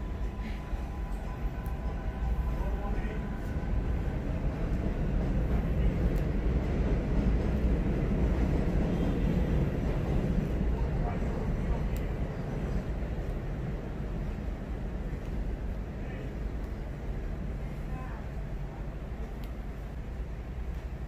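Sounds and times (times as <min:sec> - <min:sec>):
low rumble of passing vehicles: 0:00.0 - 0:21.0.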